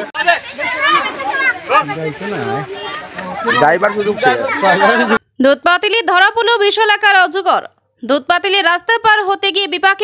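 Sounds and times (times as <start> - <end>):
people talking and calling out: 0.0 - 10.0.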